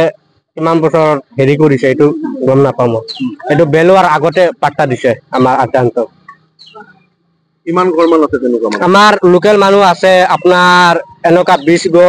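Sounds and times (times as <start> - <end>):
man speaking: 0.0 - 6.3, 7.7 - 12.0
bird chirp: 2.2 - 12.0.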